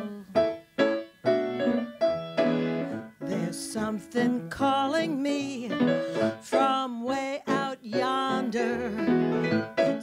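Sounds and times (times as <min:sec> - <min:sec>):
piano chords ringing: 0:00.0 - 0:10.0.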